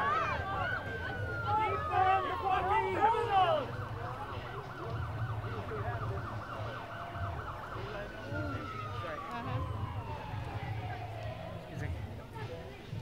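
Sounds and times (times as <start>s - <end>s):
people shouting: 0.0s - 3.8s
police car siren: 0.0s - 11.9s.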